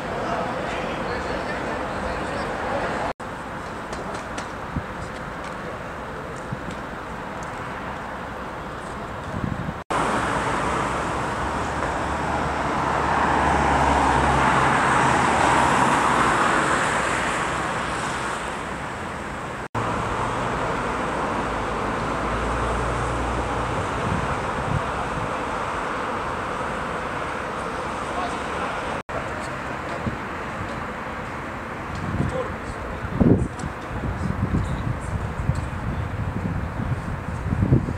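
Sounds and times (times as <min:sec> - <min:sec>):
road traffic rushing: 0:00.0 - 0:37.9
vehicle passing: 0:09.9 - 0:31.8.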